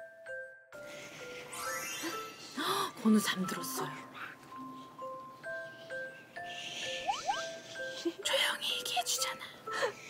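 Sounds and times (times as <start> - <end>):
tinkling bell-like music: 0.0 - 10.0.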